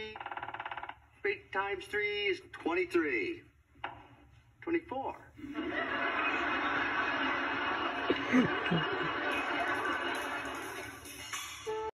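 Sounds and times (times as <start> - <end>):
studio audience laughing: 5.4 - 11.1.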